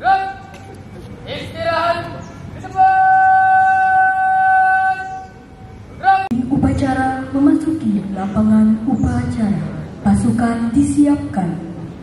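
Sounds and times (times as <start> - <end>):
person shouting command: 0.0 - 0.5, 6.0 - 6.3.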